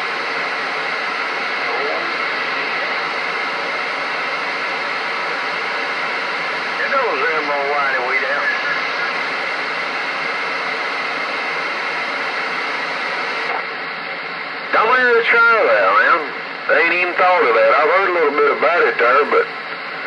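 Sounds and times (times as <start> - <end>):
radio static hiss: 0.0 - 20.0
garbled radio voice: 6.8 - 9.2, 14.7 - 19.5.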